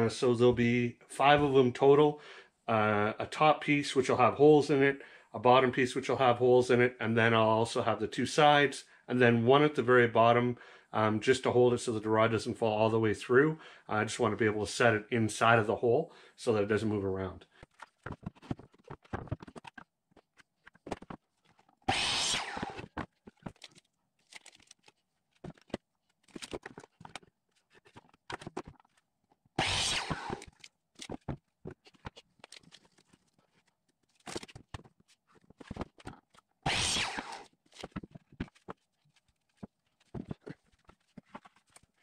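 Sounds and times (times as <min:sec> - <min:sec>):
miter saw cutting board: 0:21.9 - 0:23.0, 0:29.6 - 0:30.5, 0:36.7 - 0:37.5.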